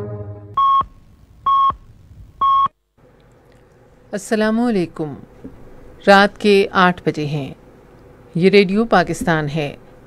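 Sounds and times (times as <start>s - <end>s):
radio time signal beeps: 0.6s - 0.9s.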